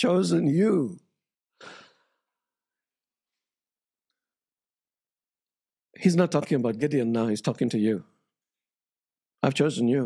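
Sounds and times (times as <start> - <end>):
man breathing: 1.6 - 2.2.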